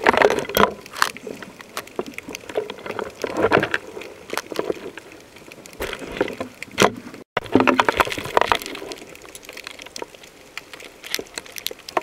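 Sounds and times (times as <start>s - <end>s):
underwater clicks and crackles: 0.0s - 12.0s
underwater water noise: 0.0s - 12.0s.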